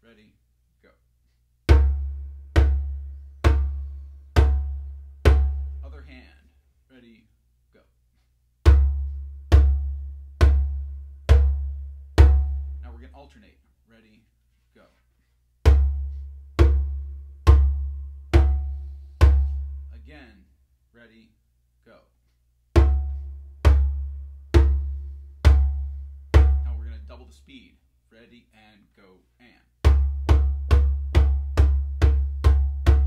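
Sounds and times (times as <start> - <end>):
djembe bass strokes: 1.7 - 6.0, 15.7 - 20.0, 22.8 - 27.2.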